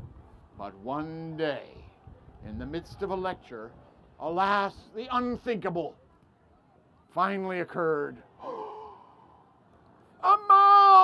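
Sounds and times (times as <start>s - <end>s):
sigh-like voice sound: 8.4s - 9.2s.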